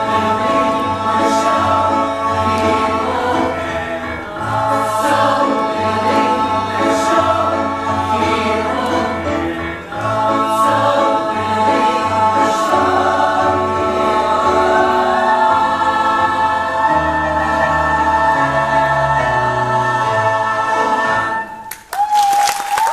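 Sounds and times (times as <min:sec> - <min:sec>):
ensemble singing show tune: 0:00.0 - 0:21.9.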